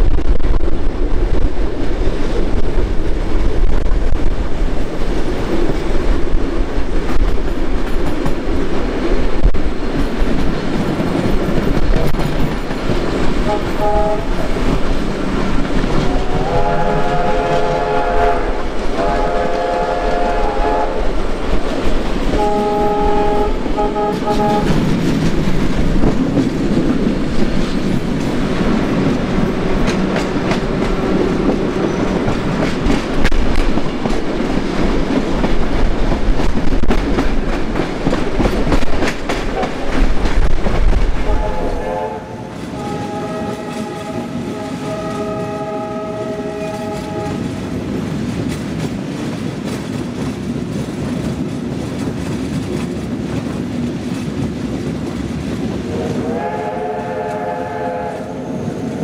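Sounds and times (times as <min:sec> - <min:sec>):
trains rumbling and clacking: 0:00.0 - 0:59.0
train whistles blowing chords: 0:13.5 - 0:14.3, 0:16.1 - 0:21.0, 0:22.4 - 0:24.7, 0:41.3 - 0:47.4, 0:55.9 - 0:58.5.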